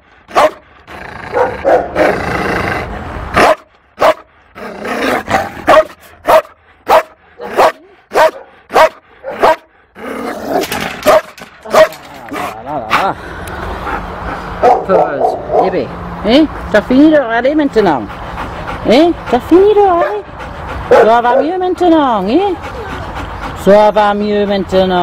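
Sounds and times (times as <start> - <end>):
dog barking: 0.3 - 0.6, 1.3 - 2.1, 3.4 - 4.3, 5.7 - 9.7, 11.0 - 12.5, 14.6 - 15.8, 20.0 - 20.2, 20.9 - 21.6
dog growling: 0.8 - 3.1, 4.5 - 5.8, 9.8 - 10.9.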